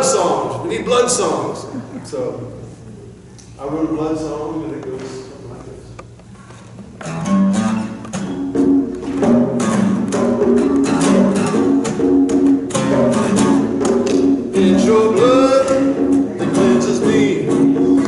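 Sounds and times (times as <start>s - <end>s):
acoustic guitar strumming: 0.0s - 1.6s, 6.8s - 18.0s.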